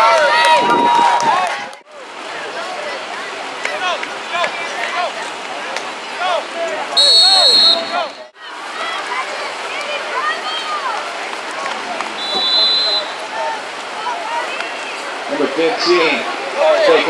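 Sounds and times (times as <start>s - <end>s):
voices shouting: 0.0s - 17.0s
shrill whistle blast: 7.0s - 8.3s, 12.2s - 13.2s.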